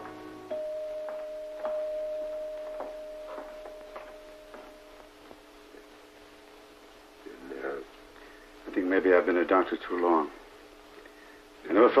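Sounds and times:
held music note: 0:00.0 - 0:05.2
footsteps at walking pace: 0:00.9 - 0:05.5.

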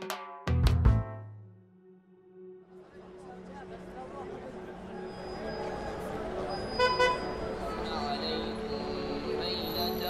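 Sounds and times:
crowd noise: 0:02.7 - 0:10.0
street traffic: 0:02.7 - 0:10.0.

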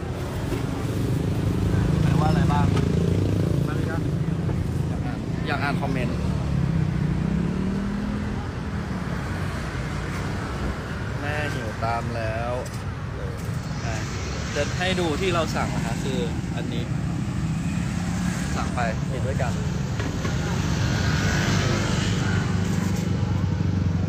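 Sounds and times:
vehicle engine accelerating: 0:05.6 - 0:08.9, 0:13.3 - 0:24.0
scattered voices: 0:11.7 - 0:17.1.

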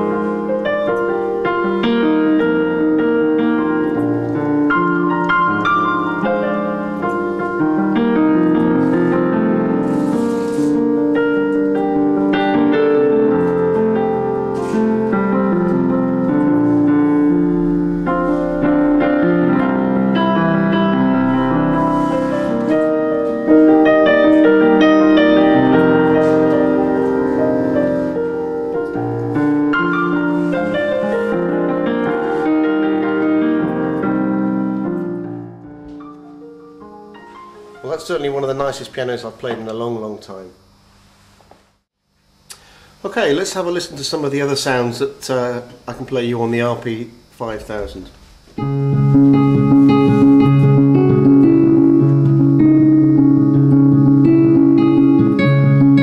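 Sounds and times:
digital piano playing: 0:00.0 - 0:40.8, 0:48.6 - 0:56.0.

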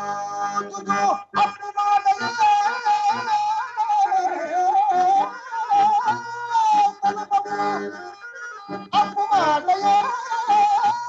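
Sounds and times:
instrumental accompaniment: 0:04.4 - 0:11.0.

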